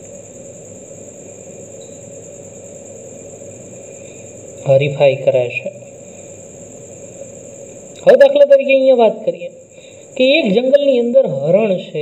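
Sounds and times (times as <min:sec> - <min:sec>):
background hiss and hum: 0:00.0 - 0:12.0
thin high-pitched whine: 0:00.0 - 0:12.0.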